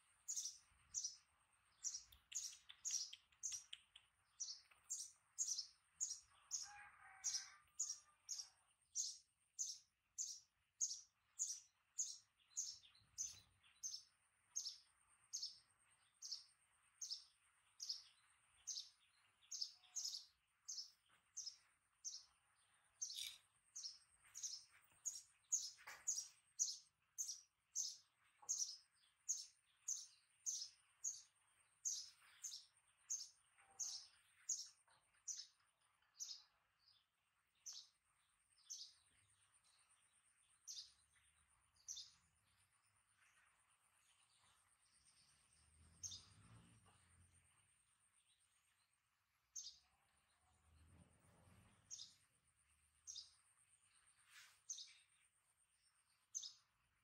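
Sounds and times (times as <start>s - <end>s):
bird chirping: 0.0s - 57.0s.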